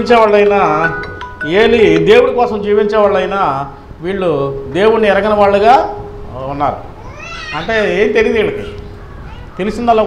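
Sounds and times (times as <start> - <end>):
steady tone: 0.0 - 7.0
man speaking into a microphone: 7.5 - 8.8, 9.6 - 10.0.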